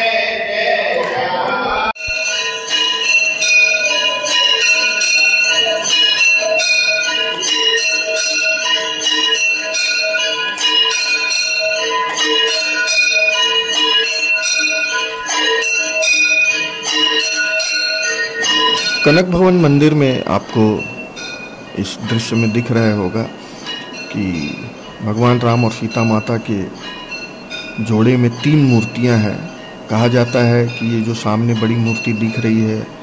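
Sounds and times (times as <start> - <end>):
temple bells ringing rapidly: 2.0 - 33.0.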